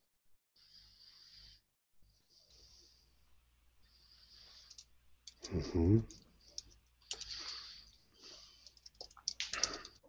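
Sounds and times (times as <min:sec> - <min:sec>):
typing on keyboard: 0:04.7 - 0:07.4, 0:08.6 - 0:10.0.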